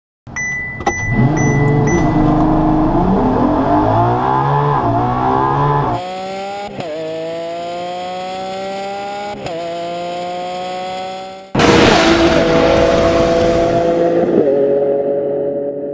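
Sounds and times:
supercar engine accelerating hard: 1.1s - 15.6s.

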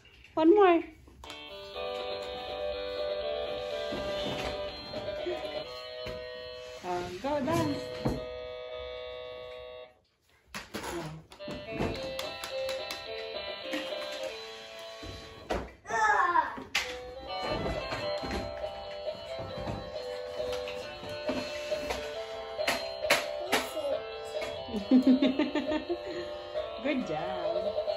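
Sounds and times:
electronic toy guitar tune: 1.2s - 10.0s, 16.8s - 27.9s.

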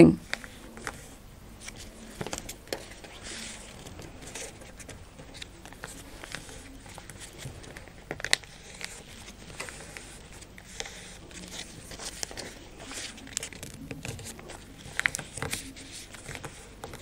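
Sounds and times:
paper crinkling and rustling: 0.2s - 17.0s
sharp paper crackle: 0.2s - 17.0s.

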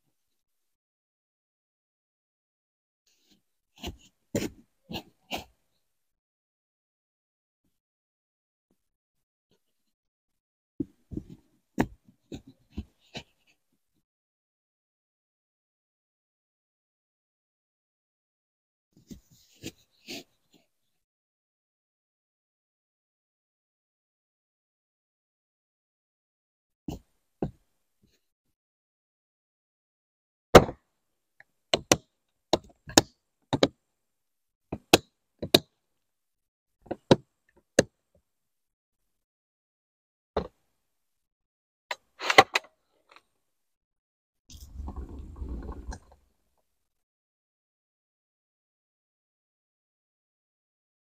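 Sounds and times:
short low rumble: 44.5s - 46.3s.

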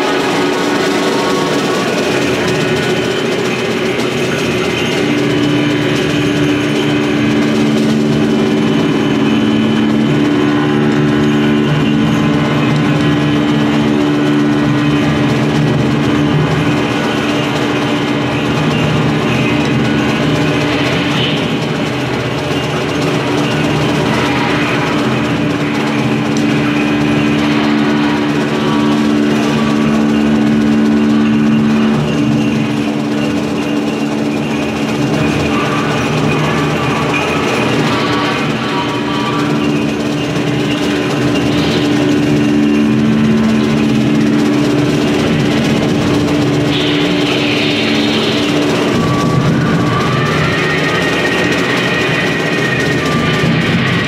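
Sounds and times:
improvised ensemble drone: 0.0s - 54.0s.

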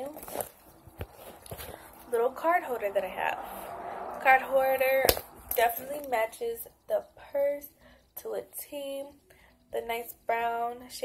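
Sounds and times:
purse rustling: 0.0s - 2.5s.

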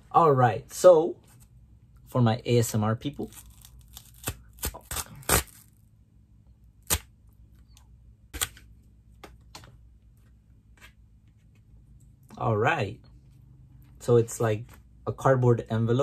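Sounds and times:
cardboard tearing snaps: 3.2s - 5.8s, 6.8s - 7.1s.

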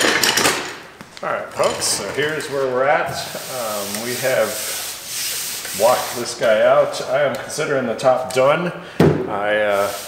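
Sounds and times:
hand rubbing sanded surface: 2.2s - 7.1s, 9.6s - 10.0s.

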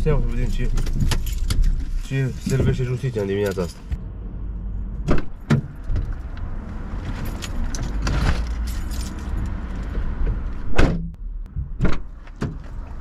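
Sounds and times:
low rumble: 3.7s - 12.3s.

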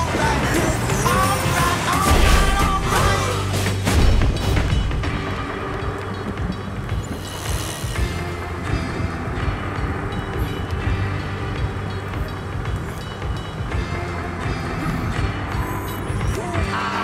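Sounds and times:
film music with sustained tones: 0.0s - 17.0s.

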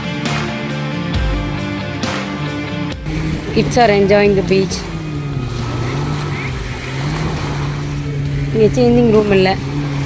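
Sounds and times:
low motor hum: 2.8s - 10.0s.

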